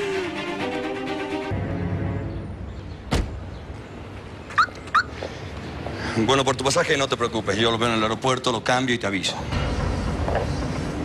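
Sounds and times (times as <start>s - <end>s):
car door shutting: 3.1s - 3.4s.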